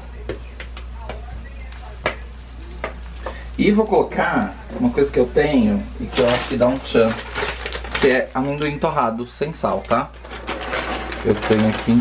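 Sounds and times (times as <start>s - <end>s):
low steady hum: 0.0s - 12.0s
frying pan crackling: 6.0s - 12.0s.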